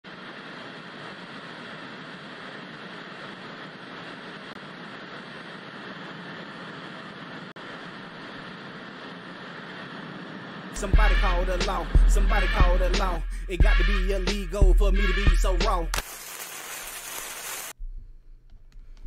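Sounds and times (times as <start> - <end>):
television static hiss: 0.1 - 10.9, 16.0 - 17.8.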